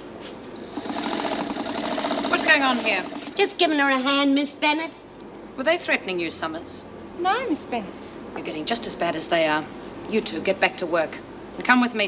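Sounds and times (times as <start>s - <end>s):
electric sewing machine running: 0.7s - 3.6s.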